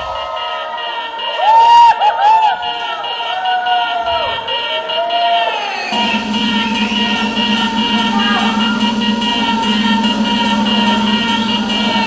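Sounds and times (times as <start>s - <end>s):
electronic dance music synth tones: 0.0s - 12.0s.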